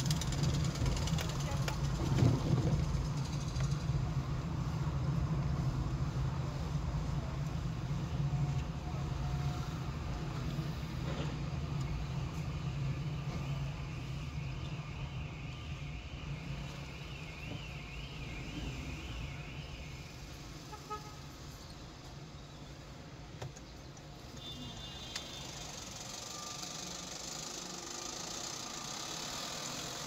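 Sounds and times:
car engine and tyres rumbling: 0.0 - 30.0.

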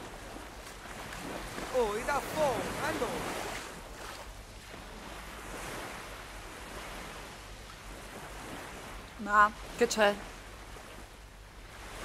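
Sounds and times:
sea waves washing on shore: 0.0 - 12.0.

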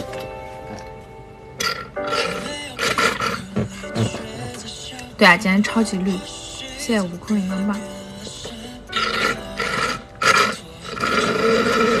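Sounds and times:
background music: 0.0 - 12.0
slurping through a straw: 9.0 - 12.0.

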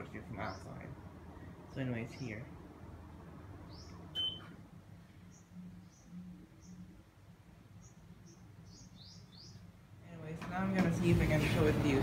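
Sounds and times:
small birds chirping: 0.0 - 2.6, 3.4 - 10.3
faint low fan hum: 0.0 - 12.0
air conditioner beep: 4.1 - 4.6.

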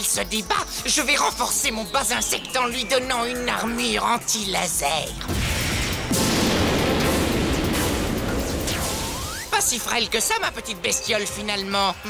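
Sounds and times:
background music: 0.0 - 12.0
energy rush sound effect: 5.4 - 9.6.

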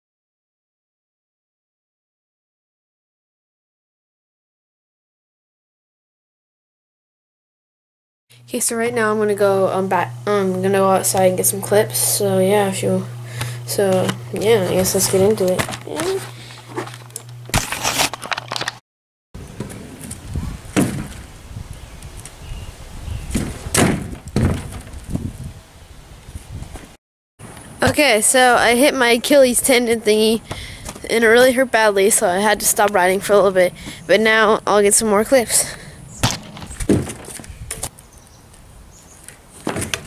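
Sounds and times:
scooter wheels rolling: 13.7 - 18.8
camera handling rustle: 15.5 - 18.8.

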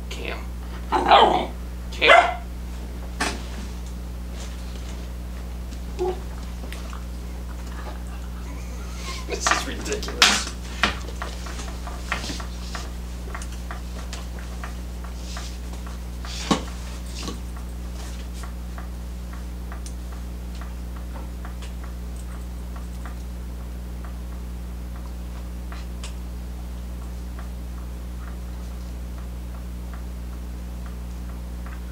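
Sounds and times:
low electrical hum: 0.0 - 31.9
puppy scuffling: 2.1 - 18.7
faint regular ticking: 3.8 - 31.9.

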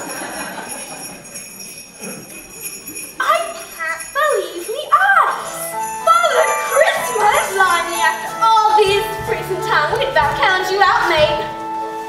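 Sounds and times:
sleigh bells jingling: 0.0 - 11.7.

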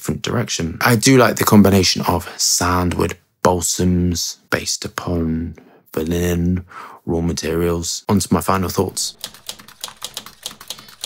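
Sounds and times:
typewriter key clicks: 9.2 - 11.0.

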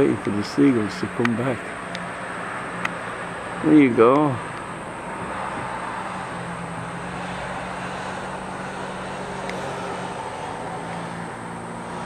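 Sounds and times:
background hiss: 0.0 - 12.0
distant engine humming: 0.0 - 12.0.

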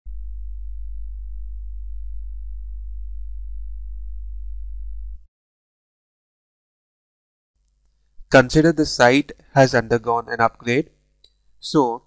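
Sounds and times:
loud low hum: 0.1 - 5.3.

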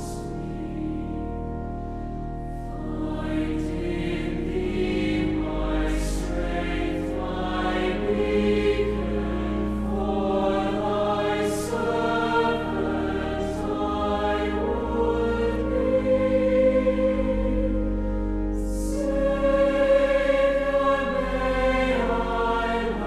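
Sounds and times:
choir singing sustained chords: 0.0 - 23.0
pipe organ bass notes: 0.0 - 23.0.

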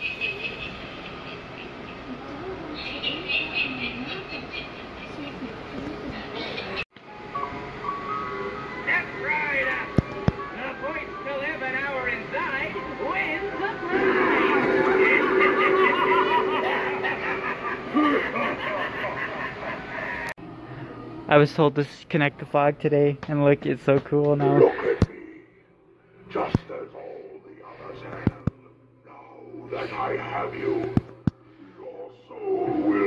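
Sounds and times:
spooky music: 7.1 - 20.0
recorded voice: 21.3 - 25.4.

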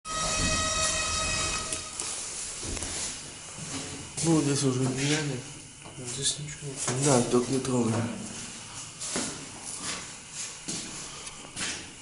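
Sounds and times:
elevator buzzing tone: 0.0 - 3.0
low hum: 0.1 - 2.5.

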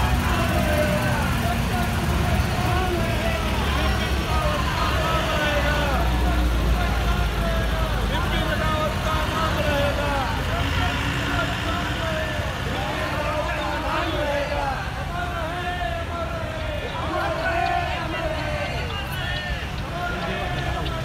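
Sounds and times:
chatter of many voices: 0.0 - 21.0
truck engines rumbling: 0.0 - 21.0.

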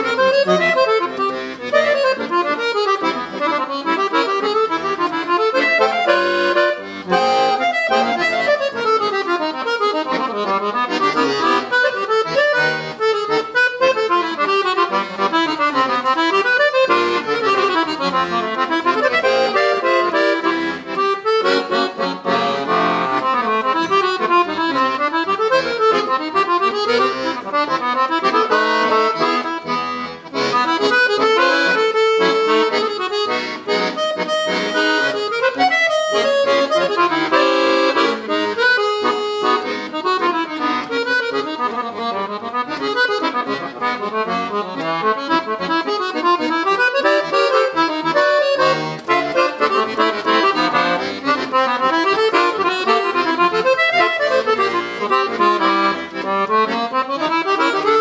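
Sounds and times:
piano accordion melody: 0.0 - 58.0.

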